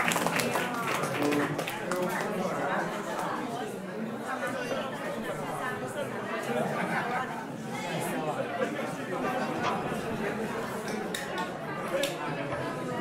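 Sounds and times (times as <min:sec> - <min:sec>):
hubbub of voices: 0:00.0 - 0:13.0.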